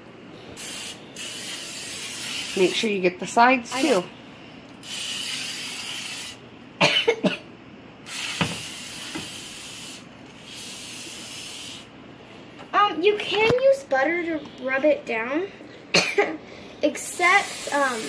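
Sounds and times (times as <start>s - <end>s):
aerosol spray can hissing: 0.6s - 2.8s, 4.8s - 6.4s, 8.1s - 11.9s, 17.3s - 18.0s.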